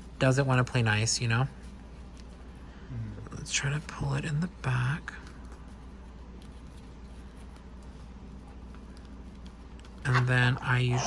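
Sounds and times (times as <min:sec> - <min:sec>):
low room hum: 0:00.0 - 0:11.0
light ticks and rustles: 0:01.2 - 0:02.6, 0:05.0 - 0:10.7.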